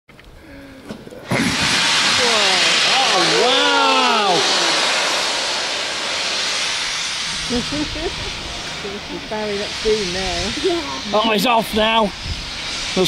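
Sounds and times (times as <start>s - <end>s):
steam hissing from locomotive: 1.1s - 13.0s.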